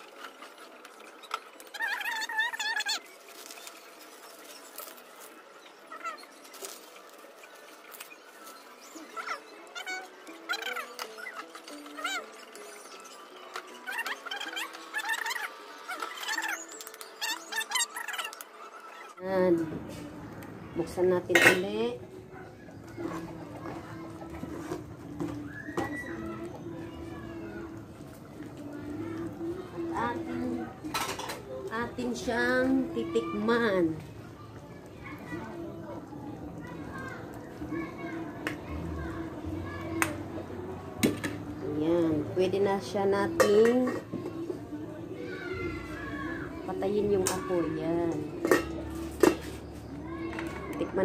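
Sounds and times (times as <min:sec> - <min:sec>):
faint voices: 0:00.0 - 0:51.0.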